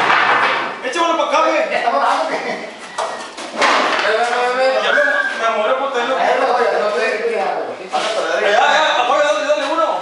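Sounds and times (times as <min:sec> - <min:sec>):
voices calling out: 0:04.0 - 0:06.8.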